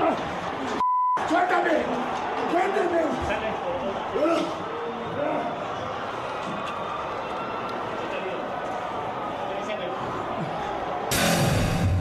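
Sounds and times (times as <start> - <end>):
voices and shouting: 0.0 - 11.1.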